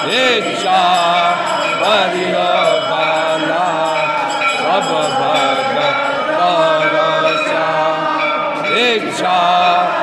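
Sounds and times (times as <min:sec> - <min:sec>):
group chanting a hymn: 0:00.0 - 0:10.0.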